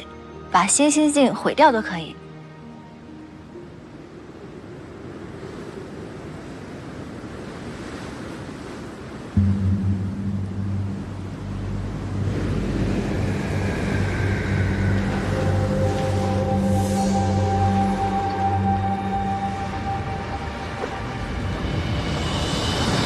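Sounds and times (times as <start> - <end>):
rushing sea waves: 0.0 - 23.0
deep musical drone: 9.4 - 23.0
high held tones: 9.4 - 23.0.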